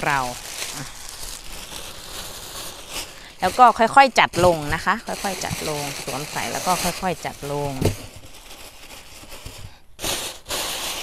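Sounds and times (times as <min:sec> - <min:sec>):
plastic bag rustling and crinkling: 0:00.0 - 0:11.0.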